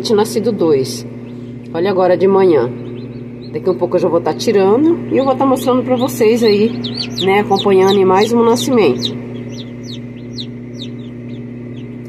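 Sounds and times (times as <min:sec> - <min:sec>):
incubator hum: 0:00.0 - 0:12.0
chicks peeping: 0:00.1 - 0:12.0.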